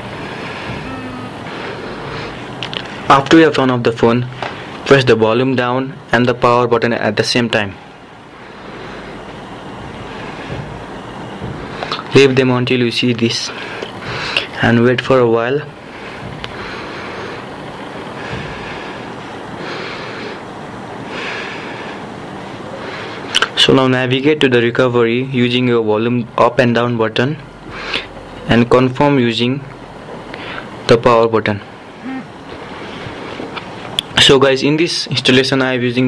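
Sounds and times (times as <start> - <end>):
steady background hiss: 0.0 - 36.0
voice murmur: 0.6 - 1.8, 32.0 - 32.4.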